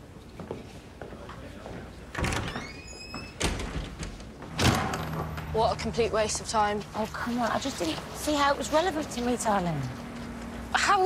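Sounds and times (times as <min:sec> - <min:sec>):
door squeaking: 0:02.1 - 0:05.4
heavy door knocking and clunking: 0:03.4 - 0:05.4.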